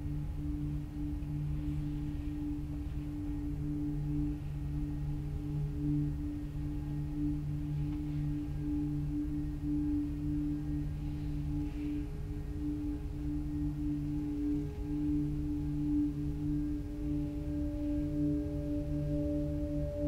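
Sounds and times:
ambient drone music: 0:00.0 - 0:20.0.

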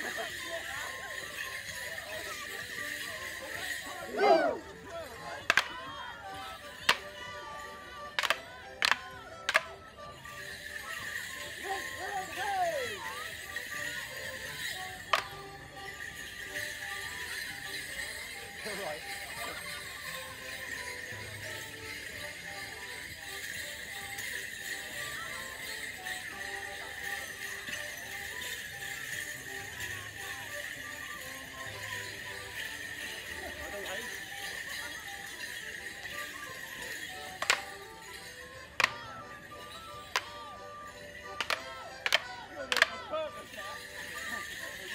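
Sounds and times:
folk dance music: 0:00.0 - 0:44.9
leg bells jingling: 0:00.0 - 0:44.9
wooden sticks clacking: 0:05.4 - 0:05.8, 0:06.8 - 0:07.1, 0:08.2 - 0:09.7, 0:37.2 - 0:37.9, 0:38.8 - 0:39.1, 0:40.0 - 0:40.4, 0:41.3 - 0:43.0
morris dance music: 0:34.1 - 0:44.9.

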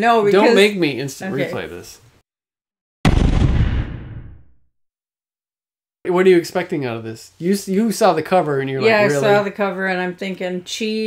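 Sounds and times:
explosion boom with low rumble: 0:03.0 - 0:04.6.

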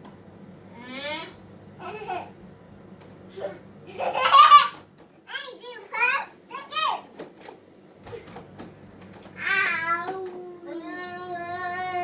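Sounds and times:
toddler singing into a tube: 0:09.4 - 0:12.0.

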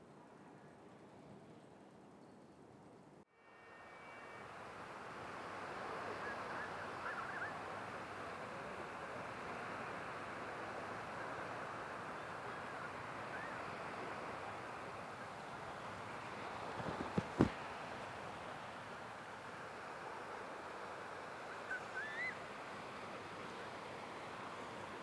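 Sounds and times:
sea surf: 0:03.4 - 0:25.0
wind on a beach: 0:03.6 - 0:25.0.

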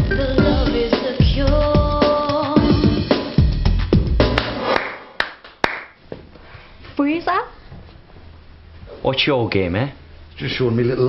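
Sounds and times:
music: 0:00.0 - 0:05.0
slow hand claps: 0:04.2 - 0:06.0.

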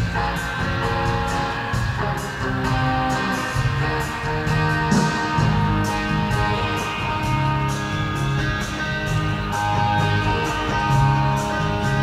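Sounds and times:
electric guitars: 0:00.0 - 0:12.0
live rock band playing: 0:00.0 - 0:12.0.

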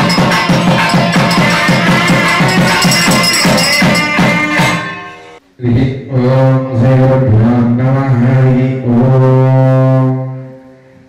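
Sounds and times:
man chanting a hymn: 0:05.6 - 0:10.8.

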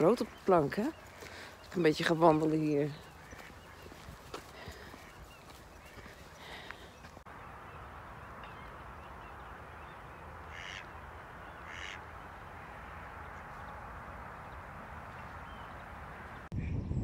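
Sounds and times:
birds chirping: 0:00.0 - 0:17.0.

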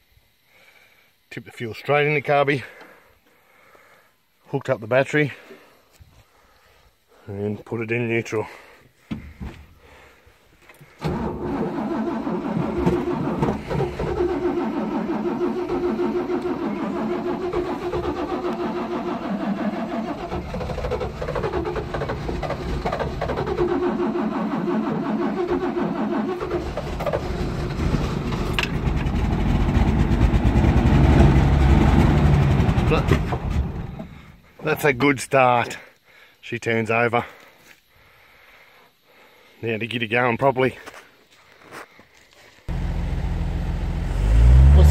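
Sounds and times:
engine cranking on starter: 0:10.8 - 0:34.4, 0:42.7 - 0:44.9.

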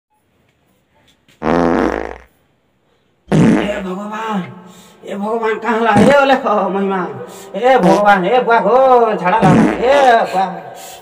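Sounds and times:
loud low fart: 0:01.4 - 0:02.4, 0:03.3 - 0:03.9, 0:09.4 - 0:10.0.

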